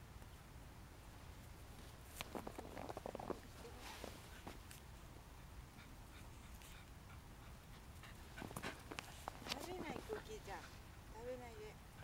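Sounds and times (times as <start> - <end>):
dog sniffing: 5.8 - 10.9.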